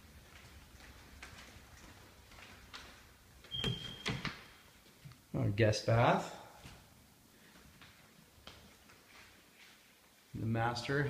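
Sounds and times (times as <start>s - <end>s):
footsteps on hardwood floor: 0.0s - 5.0s.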